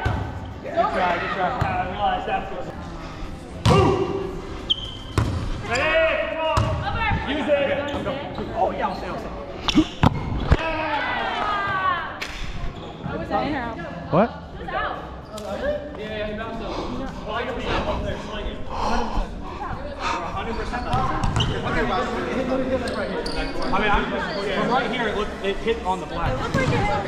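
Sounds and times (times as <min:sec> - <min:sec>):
volleyball hits echoing in gym: 0:00.0 - 0:00.4, 0:03.6 - 0:04.3, 0:05.0 - 0:05.7, 0:06.5 - 0:07.3, 0:09.7 - 0:10.7, 0:26.2 - 0:27.0.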